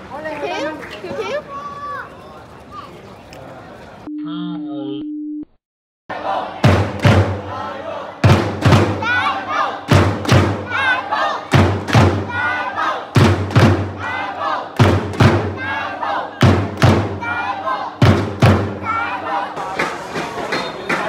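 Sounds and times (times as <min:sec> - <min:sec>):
football supporters chanting: 0:06.1 - 0:21.0
drum beats: 0:06.6 - 0:07.6, 0:08.2 - 0:10.9, 0:11.5 - 0:12.5, 0:13.1 - 0:14.1, 0:14.8 - 0:15.8, 0:16.4 - 0:17.4, 0:18.0 - 0:21.0.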